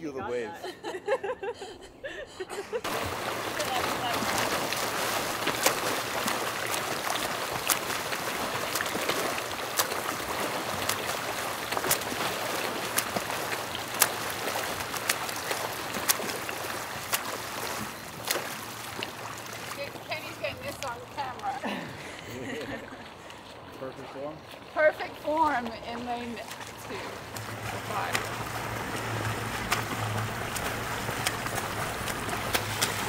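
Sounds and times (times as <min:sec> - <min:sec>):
churning water: 0:02.5 - 0:33.0
arms slapping water: 0:02.8 - 0:33.0
voices: 0:03.4 - 0:04.9, 0:19.8 - 0:22.8, 0:23.8 - 0:28.4.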